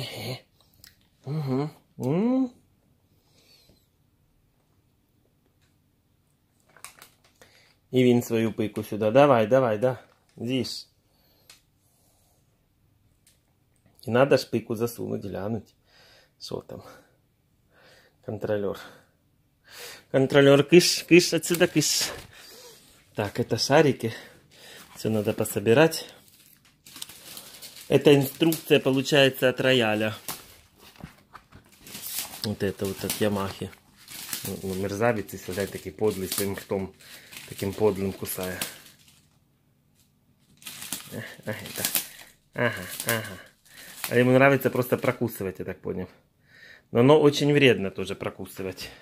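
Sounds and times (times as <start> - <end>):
man speaking: 0.0 - 0.5, 1.2 - 2.6, 7.9 - 10.9, 14.0 - 15.7, 18.2 - 19.0, 20.1 - 26.2, 27.9 - 30.4, 32.4 - 33.8, 34.4 - 38.8, 41.1 - 42.0, 42.6 - 43.5, 44.1 - 46.2, 46.9 - 49.0
paper rustling and clicks: 6.6 - 7.4, 21.2 - 22.4, 24.8 - 39.4, 40.0 - 45.1
plastic folder handling: 6.6 - 7.4, 21.4 - 22.4, 24.8 - 39.2, 40.5 - 44.2
man's voice: 20.2 - 22.3, 27.9 - 30.3, 32.4 - 33.8.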